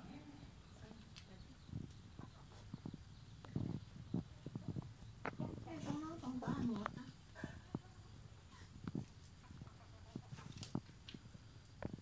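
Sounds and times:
chicken clucking: 0:01.6 - 0:08.5, 0:09.4 - 0:10.8.

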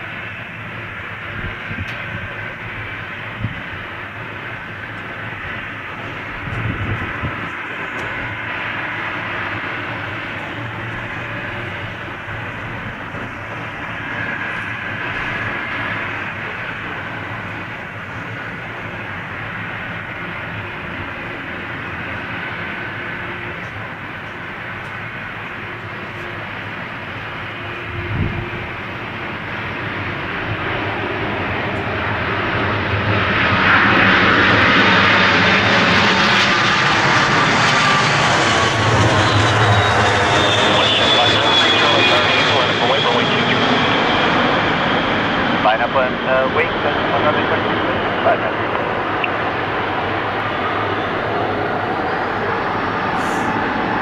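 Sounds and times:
high engine whines: 0:00.0 - 0:54.0
jet engine noise: 0:00.0 - 0:54.0.

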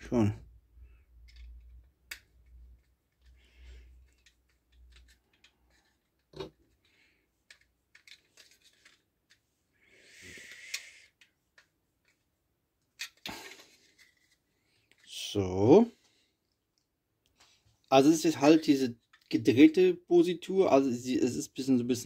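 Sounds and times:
plastic part handled: 0:01.1 - 0:09.5, 0:10.5 - 0:15.1, 0:19.0 - 0:19.4.

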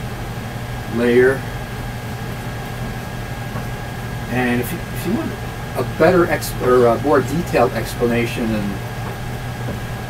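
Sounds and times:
low hum with hiss: 0:00.0 - 0:10.0.

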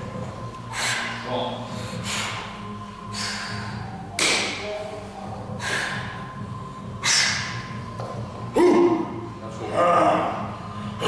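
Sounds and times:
man breathing hard: 0:00.6 - 0:04.1, 0:05.5 - 0:07.7.

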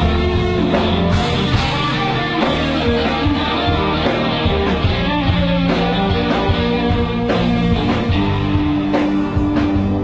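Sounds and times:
drum kit: 0:00.0 - 0:10.0
electric guitars: 0:00.0 - 0:10.0.

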